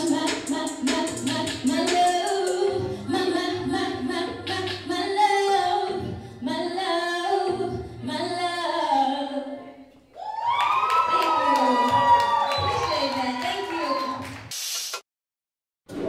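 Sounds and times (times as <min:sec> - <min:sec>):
woman singing into a microphone: 0:00.0 - 0:09.8.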